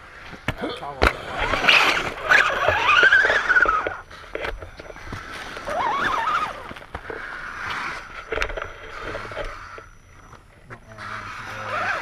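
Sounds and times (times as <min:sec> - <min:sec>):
electric motor and gears whining: 0:01.3 - 0:12.0.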